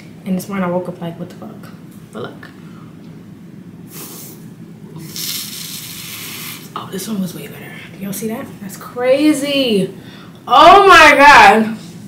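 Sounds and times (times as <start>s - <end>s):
breath blown through foaming pad: 3.9s - 4.4s, 5.0s - 6.7s.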